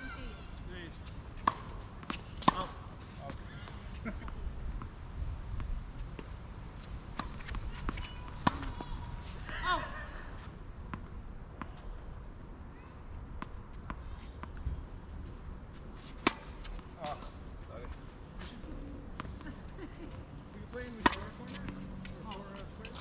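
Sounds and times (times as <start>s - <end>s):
tennis balls struck by rackets: 1.2s - 3.4s, 7.0s - 9.6s, 16.1s - 17.2s, 20.9s - 23.0s
tennis balls bouncing: 1.2s - 4.9s, 5.6s - 9.8s, 20.8s - 23.0s.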